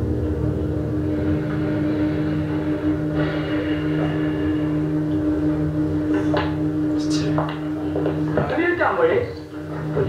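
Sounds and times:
low pulsing tone: 0.0 - 8.5, 9.2 - 10.0
electronic drone: 0.0 - 10.0.

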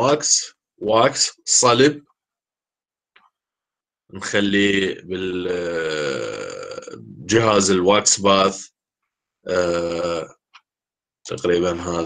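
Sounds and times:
man saying aah: 4.9 - 7.7, 9.5 - 10.3.

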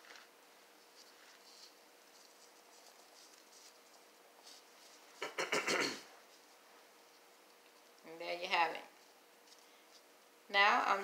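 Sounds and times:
gloved hands rustling: 0.0 - 5.4, 6.1 - 8.2, 8.9 - 10.4
person coughing: 5.2 - 6.1.

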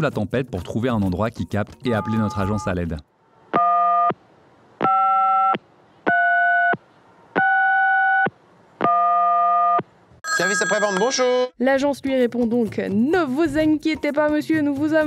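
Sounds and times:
long electronic phone beeps: 4.8 - 6.8, 8.9 - 11.6.

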